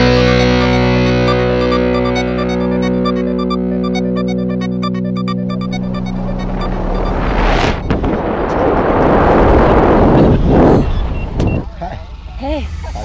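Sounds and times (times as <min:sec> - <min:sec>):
wind rushing over microphone: 0:06.4 - 0:11.8.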